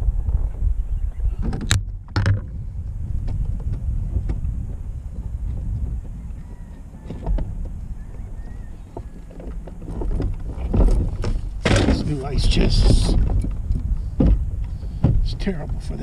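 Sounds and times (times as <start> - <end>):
wind rumbling on microphone: 0.0 - 16.0
knocks from kayak: 1.4 - 2.6, 7.0 - 15.4.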